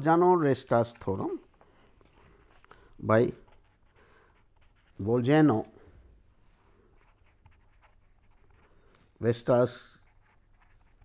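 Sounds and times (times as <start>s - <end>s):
pen writing on paper: 3.4s - 5.0s, 7.0s - 8.8s, 10.0s - 11.0s.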